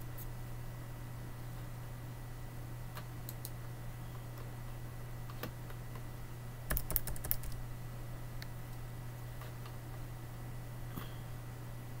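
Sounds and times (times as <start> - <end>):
steady low hum: 0.0 - 12.0
computer keyboard keystrokes: 6.7 - 7.6.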